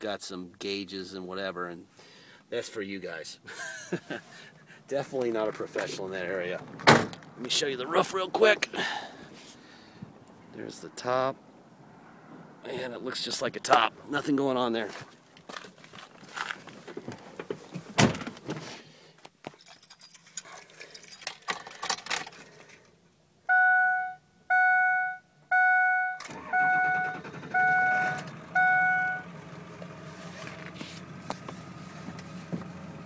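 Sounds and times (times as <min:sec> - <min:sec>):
clicks and rustles: 0:14.9 - 0:22.9
dashboard warning chimes: 0:23.5 - 0:29.3.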